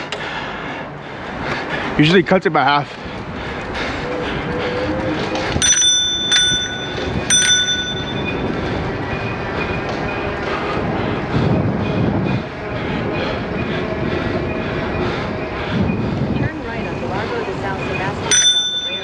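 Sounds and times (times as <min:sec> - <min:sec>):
bicycle riding noise: 0:00.0 - 0:19.0
bicycle bell ringing: 0:05.6 - 0:08.6, 0:18.2 - 0:19.0.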